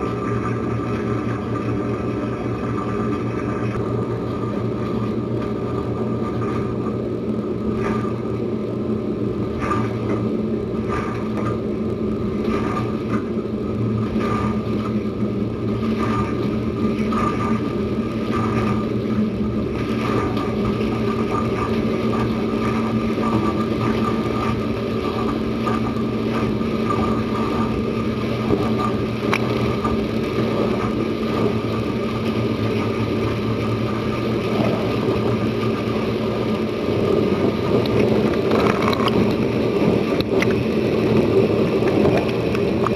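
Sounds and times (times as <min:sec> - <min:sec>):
dishwasher pump humming: 0:00.0 - 0:42.9.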